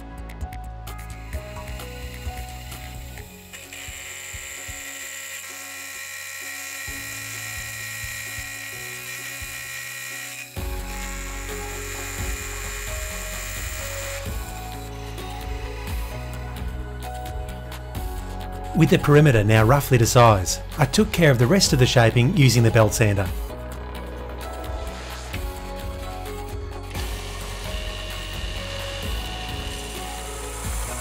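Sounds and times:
soft background music: 0.0 - 31.0
milling machine cutting whine: 0.9 - 18.0, 23.3 - 31.0.

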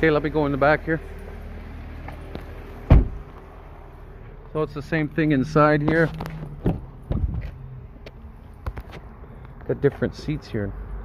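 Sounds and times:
truck door shutting thump: 2.9 - 3.3.

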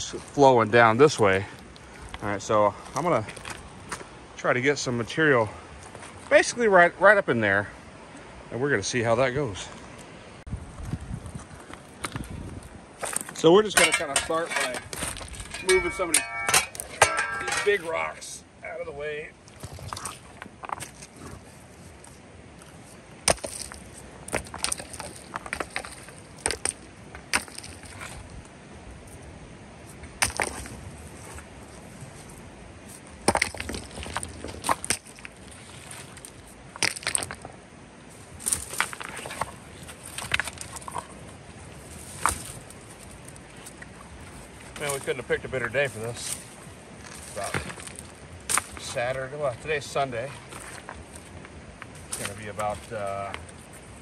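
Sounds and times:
wind buffeting microphone: 10.4 - 18.3, 19.5 - 36.7
rocks knocking together: 11.7 - 18.0, 23.2 - 28.2, 30.1 - 30.8, 33.1 - 37.6, 38.4 - 41.2, 44.6 - 49.2.

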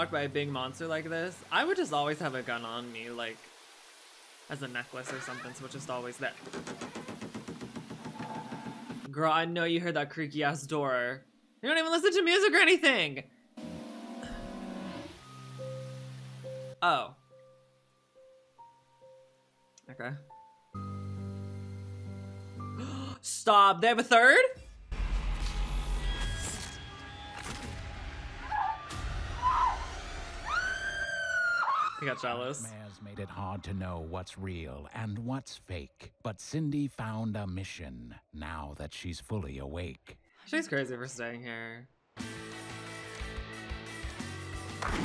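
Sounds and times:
door hinges creaking: 5.0 - 5.7, 6.3 - 9.1
horror film music: 13.6 - 16.8
woman screaming: 28.4 - 32.2.

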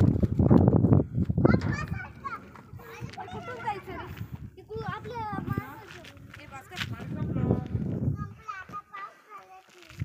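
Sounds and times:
children talking and calling out: 1.0 - 10.0.

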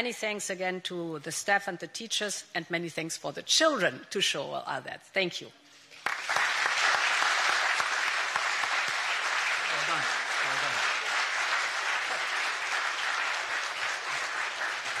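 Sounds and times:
crowd applauding: 6.0 - 15.0.

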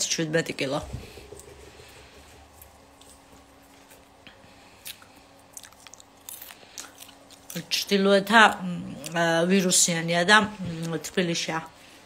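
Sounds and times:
chewing crunchy food: 2.0 - 9.2.

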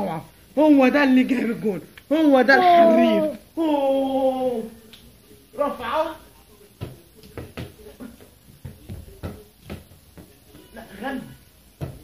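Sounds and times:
ball thumping on floor: 6.8 - 10.6, 11.8 - 12.0.

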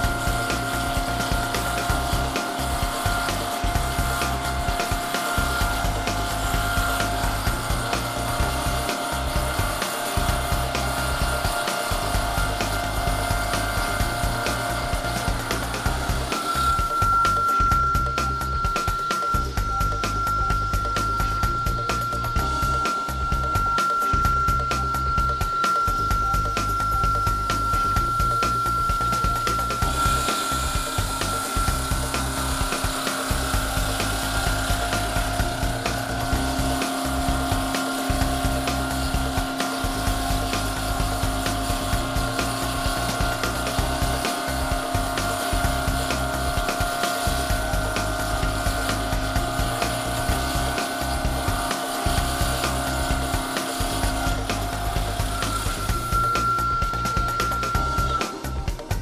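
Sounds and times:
background music with beat: 0.0 - 59.0
stone saw blade cutting: 0.0 - 59.0.

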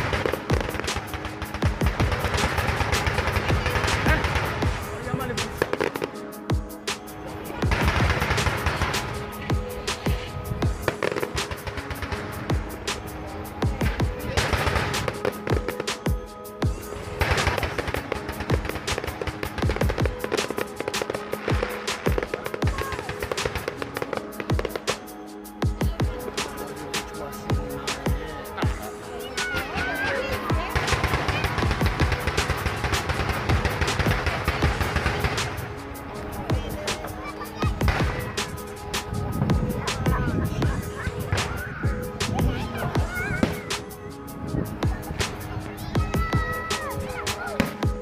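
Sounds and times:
fireworks bangs: 0.0 - 6.2, 17.1 - 24.9
fireworks crackling and popping: 0.0 - 48.0
music: 0.0 - 48.0.

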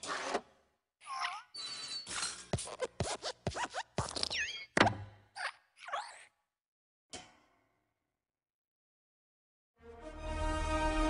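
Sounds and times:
cartoon springy squeaks and hops: 1.0 - 6.4.

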